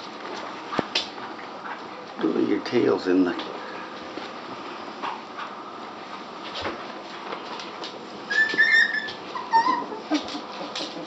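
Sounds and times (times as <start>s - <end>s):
puppy whimpering: 8.3s - 11.0s.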